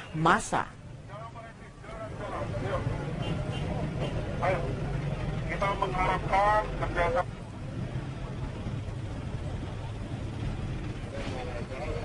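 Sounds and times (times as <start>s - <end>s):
street noise rumble: 0.0s - 12.0s.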